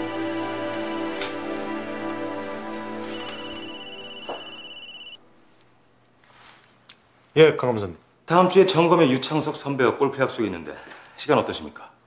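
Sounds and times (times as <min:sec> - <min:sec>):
mobile phone ringing: 0:00.0 - 0:02.3, 0:03.0 - 0:05.2
soft background music: 0:00.0 - 0:05.8.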